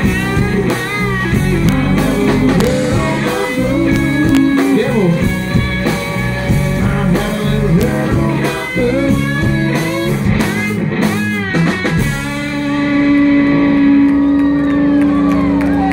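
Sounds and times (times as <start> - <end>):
live rock band playing: 0.0 - 15.9.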